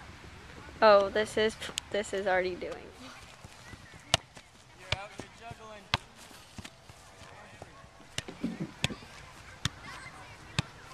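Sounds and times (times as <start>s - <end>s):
foot kicking ball thumps: 3.3s - 10.8s.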